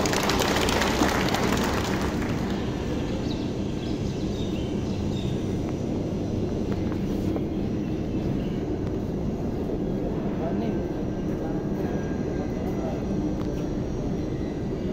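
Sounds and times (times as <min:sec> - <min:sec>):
low rumbling noise: 0:00.0 - 0:14.9.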